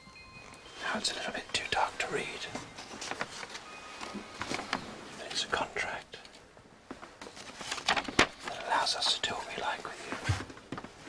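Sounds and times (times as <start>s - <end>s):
faint held music tones: 0.0s - 11.0s
man whispering: 0.8s - 2.6s, 5.1s - 6.4s, 8.4s - 10.4s.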